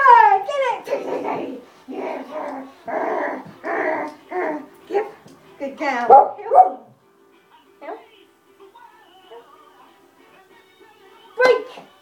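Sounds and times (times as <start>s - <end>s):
excited dog barking: 6.1s - 6.9s.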